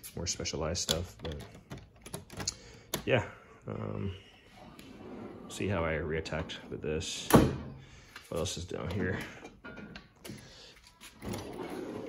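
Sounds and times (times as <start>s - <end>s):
metal drawer sliding open: 11.2s - 12.0s.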